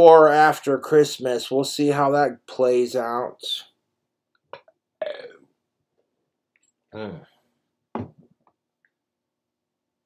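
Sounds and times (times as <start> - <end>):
man burping: 4.6 - 5.5, 6.9 - 7.4.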